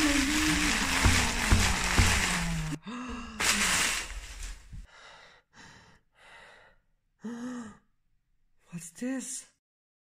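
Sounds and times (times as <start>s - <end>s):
tissue paper rustling: 0.0s - 4.9s
person gasping in surprise: 2.1s - 4.5s.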